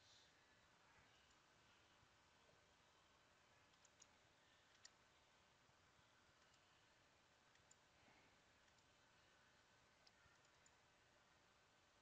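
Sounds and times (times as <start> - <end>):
computer mouse clicks: 3.6 - 5.0, 6.3 - 6.7, 7.5 - 7.9, 8.6 - 9.0, 10.0 - 10.8.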